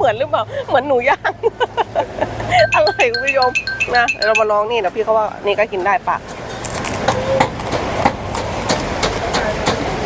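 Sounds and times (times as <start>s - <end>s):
market crowd chatter: 4.0s - 10.0s
crunching and chewing: 6.5s - 8.9s.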